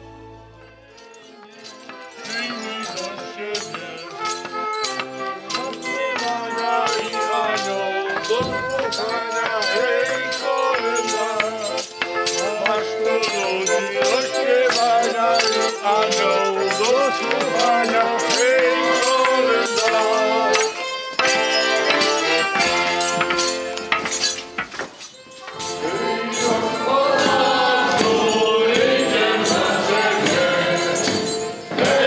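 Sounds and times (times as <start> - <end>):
accordion: 0.0 - 32.0
carolers singing together: 1.0 - 24.4, 25.5 - 32.0
rattling percussion beat: 1.1 - 32.0.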